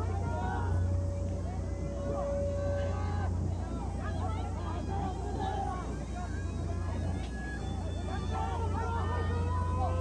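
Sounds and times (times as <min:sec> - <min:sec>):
distant voices calling out: 0:00.0 - 0:10.0
steady low drone: 0:00.0 - 0:10.0.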